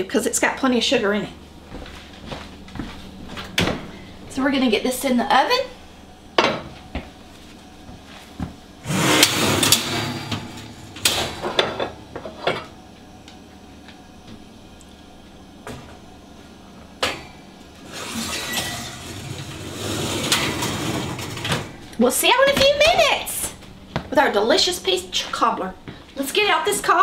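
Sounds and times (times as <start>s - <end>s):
wire oven racks rattling: 8.8s - 12.6s, 17.9s - 23.1s.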